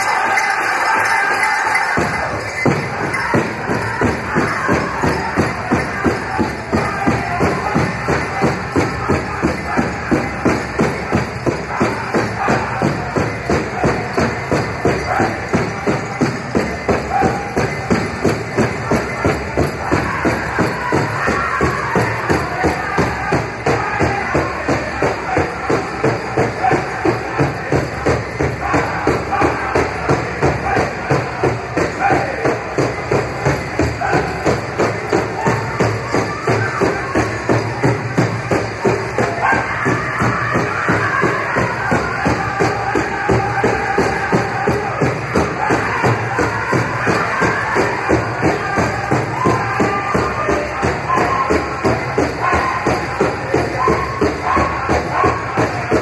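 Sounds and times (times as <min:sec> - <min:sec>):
people singing: 0:00.0 - 0:16.1, 0:18.9 - 0:38.0, 0:38.6 - 0:56.0
steady big drumbeat: 0:00.0 - 0:56.0.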